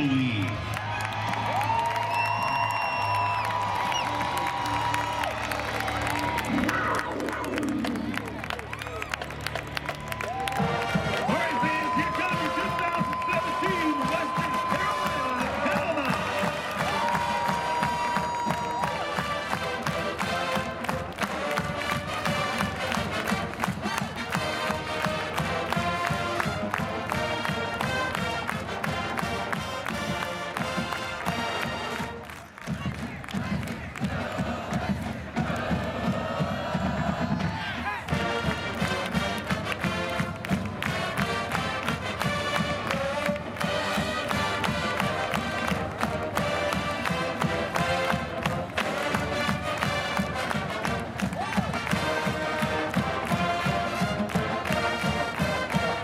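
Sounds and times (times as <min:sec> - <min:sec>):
marching band brass and drums: 0:00.0 - 0:56.0.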